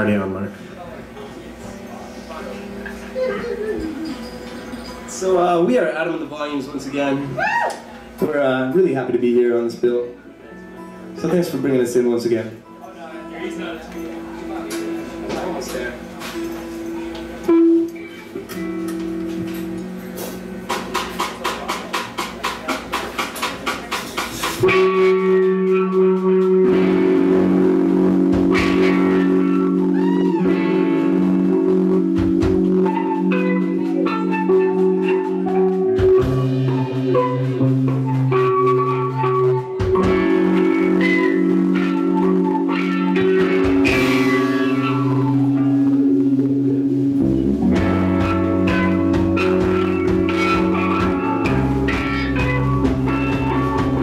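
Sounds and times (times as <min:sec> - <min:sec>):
electric guitar ringing chord: 0:08.7 - 0:20.8, 0:24.6 - 0:54.0.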